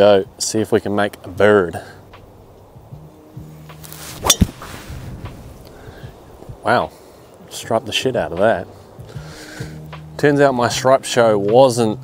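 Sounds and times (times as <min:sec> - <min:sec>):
golf club striking ball: 0:03.7 - 0:04.7.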